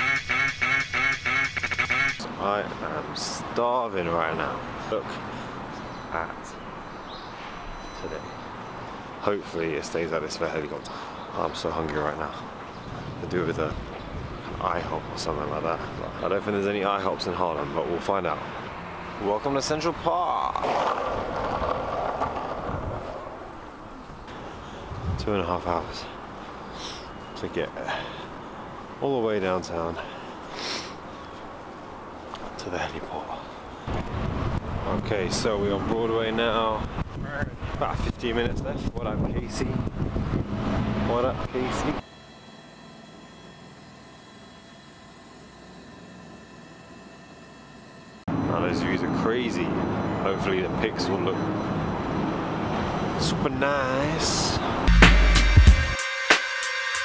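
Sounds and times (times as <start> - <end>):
skateboard wheels rolling on asphalt: 20.4 - 25.2.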